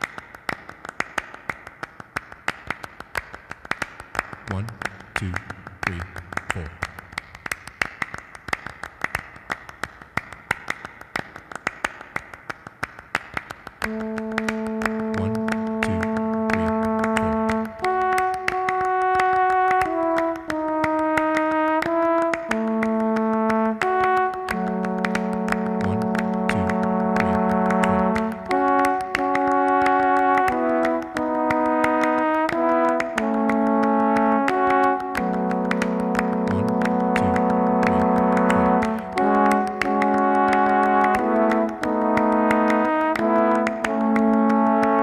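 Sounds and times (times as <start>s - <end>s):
hand percussion claps and taps: 0.0s - 45.0s
trombone chords: 13.9s - 45.0s.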